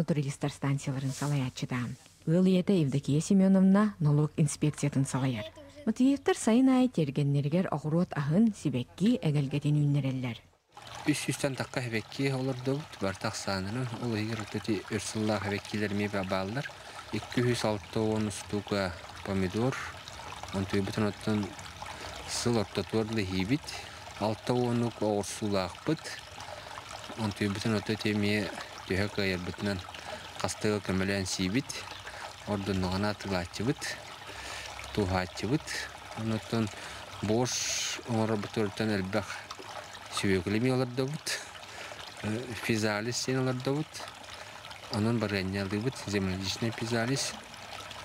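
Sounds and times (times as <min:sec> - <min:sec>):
fountain water trickling: 0:10.7 - 0:48.0
man speaking: 0:42.2 - 0:44.1, 0:44.9 - 0:47.4.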